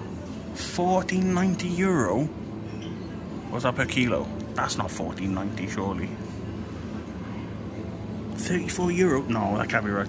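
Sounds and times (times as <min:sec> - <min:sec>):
ventilation drone: 0:00.0 - 0:10.0.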